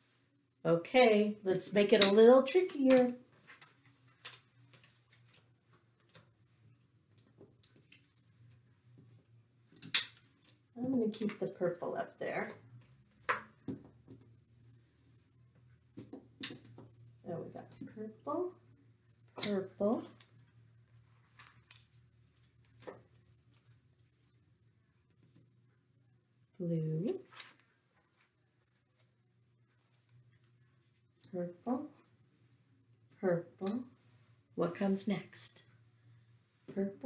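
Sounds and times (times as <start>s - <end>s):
low steady hum: 0.0s - 37.0s.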